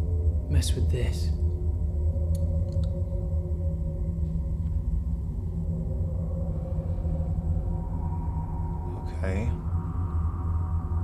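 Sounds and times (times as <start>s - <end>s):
low droning hum: 0.0s - 11.0s
faint clicks: 2.3s - 3.0s.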